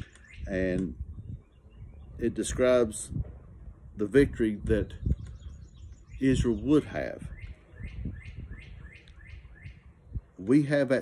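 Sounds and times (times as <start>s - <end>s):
songbird chirping: 0.0s - 2.9s, 4.6s - 11.0s.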